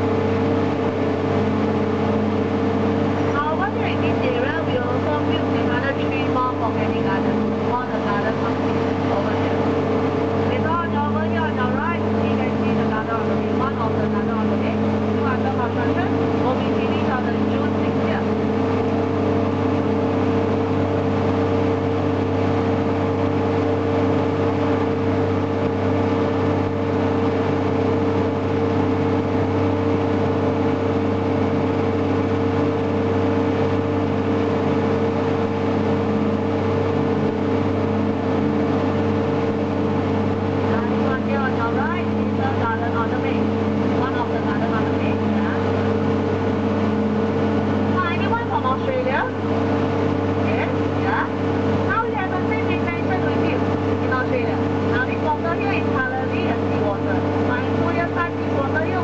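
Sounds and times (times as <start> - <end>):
boat engine droning: 0.0 - 59.0.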